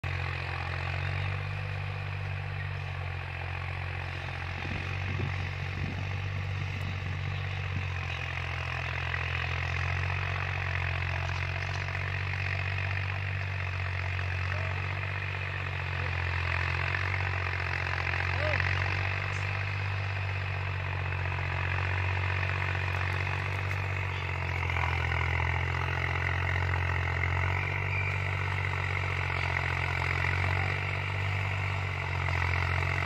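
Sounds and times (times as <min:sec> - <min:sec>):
rotavator grinding: 0:00.0 - 0:33.0
tractor engine under load: 0:00.0 - 0:33.0.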